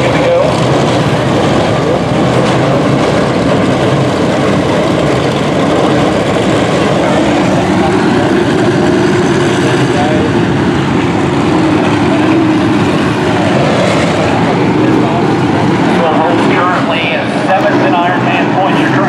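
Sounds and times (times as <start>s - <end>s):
stock car engines droning: 0.0s - 19.0s.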